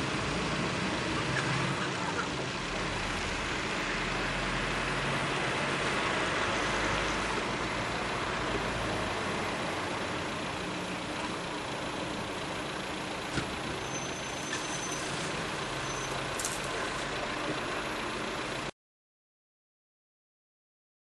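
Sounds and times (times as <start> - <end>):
truck engine pulling away: 0.0 - 18.7.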